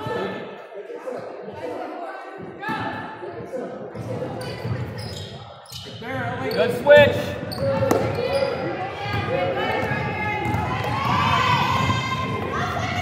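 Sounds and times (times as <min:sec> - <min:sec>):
basketball bouncing on wooden floor: 0:07.0 - 0:13.0.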